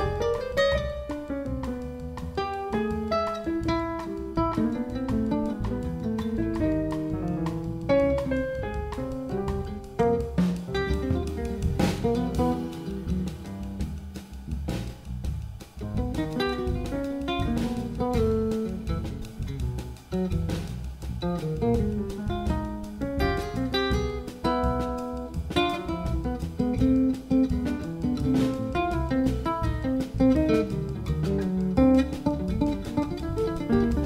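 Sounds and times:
drum kit: 0.0 - 34.0
electric bass: 0.0 - 34.0
piano: 0.0 - 34.0.

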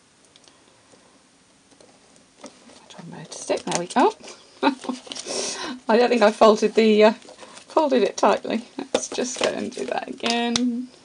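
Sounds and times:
paper rustle: 2.4 - 10.2.

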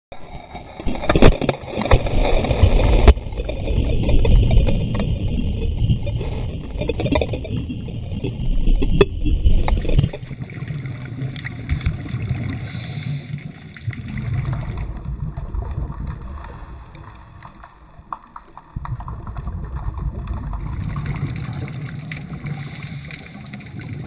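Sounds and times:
underwater churning water and bubbles: 0.1 - 24.0.

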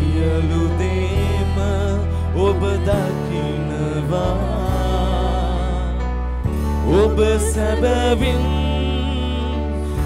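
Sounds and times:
bass and instrumental accompaniment: 0.0 - 10.0.

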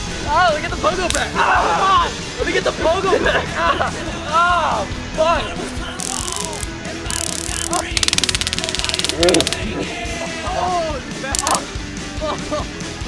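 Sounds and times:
stun guns crackling: 5.9 - 9.7, 11.4 - 11.6.

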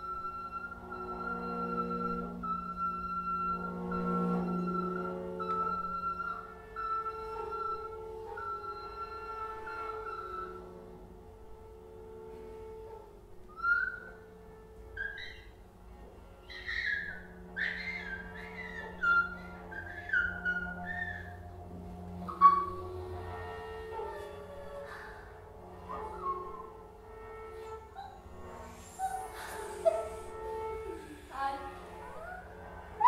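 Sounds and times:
low drone: 17.3 - 33.0.

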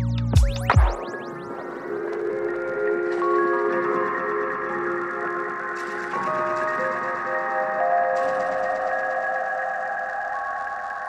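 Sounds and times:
sustained synth chords: 0.0 - 11.0.

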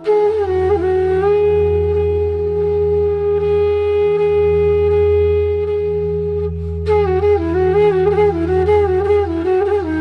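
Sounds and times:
flute playing slow melody: 0.0 - 10.0.

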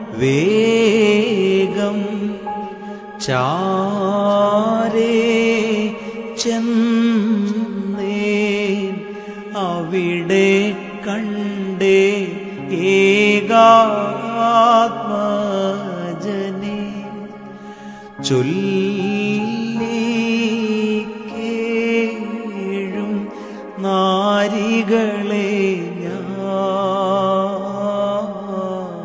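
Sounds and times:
electronic keyboard melody: 0.0 - 29.0.

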